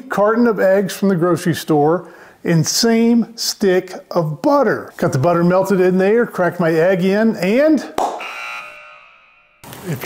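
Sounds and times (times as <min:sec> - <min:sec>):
metallic chime ringing: 0:08.2 - 0:09.7.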